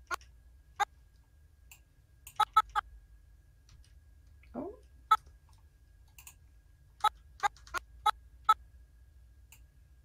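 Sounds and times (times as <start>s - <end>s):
low steady hum: 0.0s - 10.0s
computer mouse clicks: 6.1s - 6.4s.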